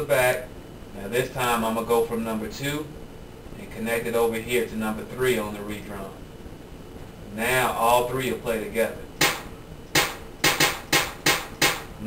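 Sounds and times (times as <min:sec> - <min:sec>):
layered clap and snare hit: 0:09.2 - 0:12.0.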